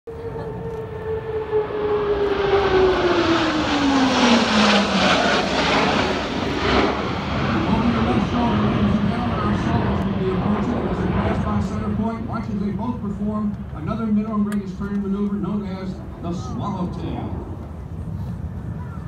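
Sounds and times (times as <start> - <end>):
jets flying past: 0.1 - 19.0.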